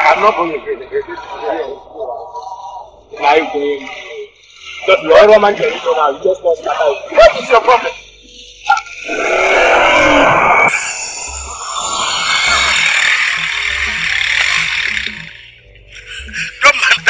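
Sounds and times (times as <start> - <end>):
slow low film music beat: 11.3 - 17.0.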